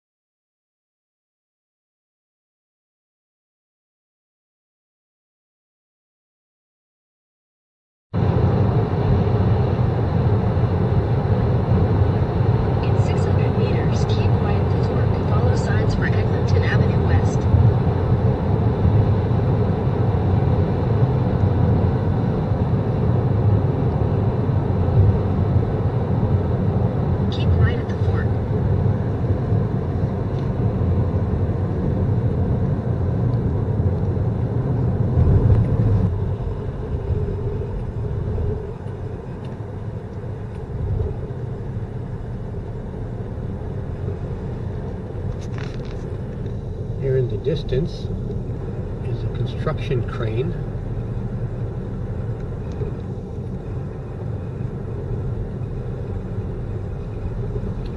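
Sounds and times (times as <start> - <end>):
car road and tyre noise: 8.2 - 57.9.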